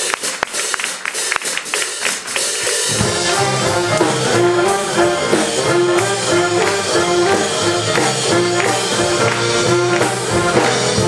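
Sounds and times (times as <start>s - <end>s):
audience clapping: 0.0s - 11.0s.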